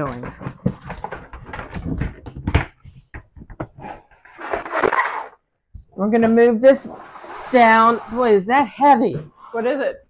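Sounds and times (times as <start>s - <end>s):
plastic bins knocking and clattering: 0.0s - 5.4s.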